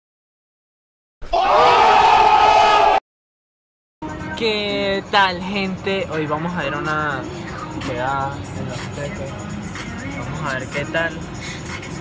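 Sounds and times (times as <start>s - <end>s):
voices yelling together: 1.3s - 3.0s.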